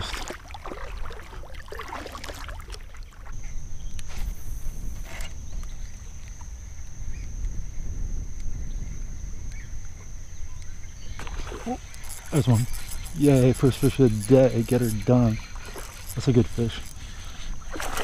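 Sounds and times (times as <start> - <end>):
wind and water rumble: 0.0 - 18.0
faint high whine: 3.4 - 18.0.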